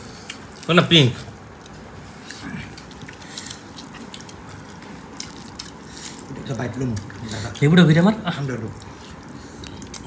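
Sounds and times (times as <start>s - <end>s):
wet squelches of eating by hand: 0.0s - 10.0s.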